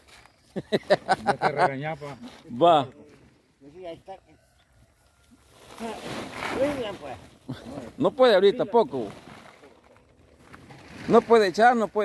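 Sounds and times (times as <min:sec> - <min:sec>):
silage rustling into sack: 0:05.5 - 0:07.5.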